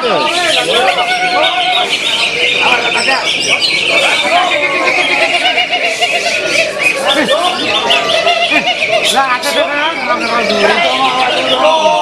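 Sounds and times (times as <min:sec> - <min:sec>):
men shouting: 0:00.0 - 0:12.0
songbirds chirping and trilling: 0:00.0 - 0:12.0.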